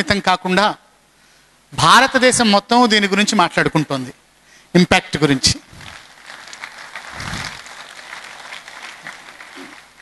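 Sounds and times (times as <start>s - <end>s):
audience applauding: 5.7s - 10.0s.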